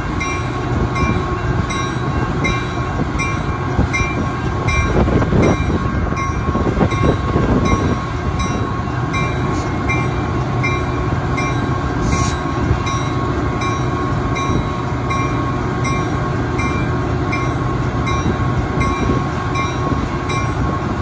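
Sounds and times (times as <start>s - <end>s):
diesel locomotive engine: 0.0s - 21.0s.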